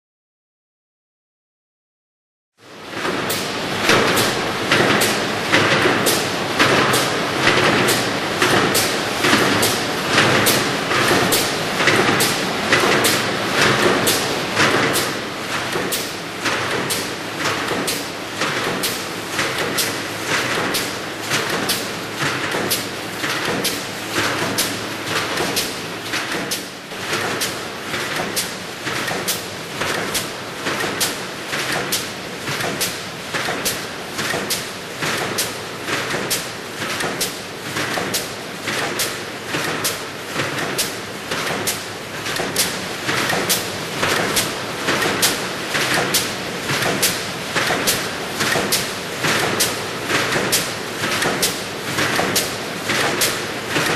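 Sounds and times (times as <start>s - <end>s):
steady machine noise: 3.0s - 28.2s.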